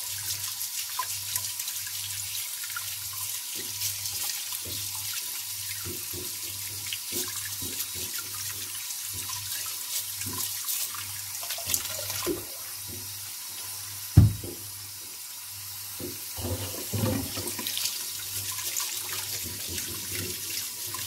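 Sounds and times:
brush scrubbing potato: 0:00.0 - 0:13.8, 0:16.4 - 0:21.0
tap running into sink: 0:03.5 - 0:13.2, 0:14.1 - 0:14.8, 0:16.0 - 0:18.0, 0:18.7 - 0:21.0.

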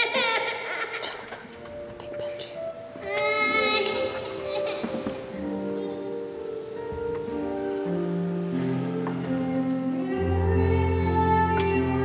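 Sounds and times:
high solo voice singing: 0:03.0 - 0:06.1.

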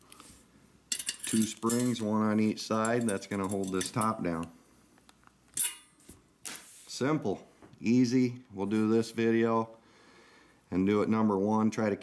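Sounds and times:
metallic spring scrape: 0:05.6 - 0:06.6.

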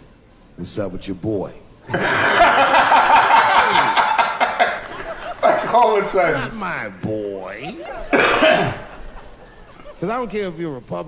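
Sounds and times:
man coughing: 0:08.1 - 0:09.0.

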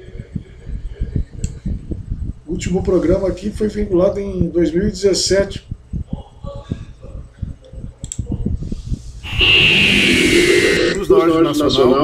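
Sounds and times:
hiss with sliding high tone: 0:09.2 - 0:11.1.

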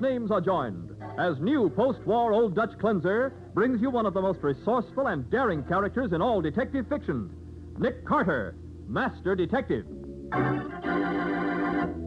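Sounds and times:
organ playing sustained chords: 0:00.0 - 0:12.0.

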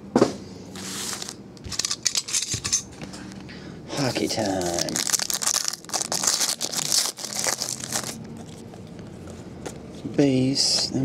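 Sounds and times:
foil wrappers crinkling: 0:04.0 - 0:09.0.

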